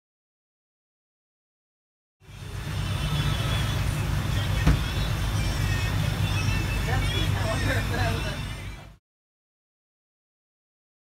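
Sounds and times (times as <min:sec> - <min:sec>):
boat engine humming: 0:02.2 - 0:09.0
faint passenger voices: 0:02.3 - 0:09.0.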